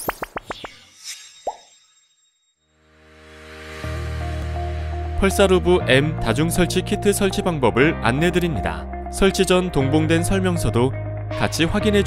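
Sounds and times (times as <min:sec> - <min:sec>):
low sustained music chord: 0:03.5 - 0:10.2.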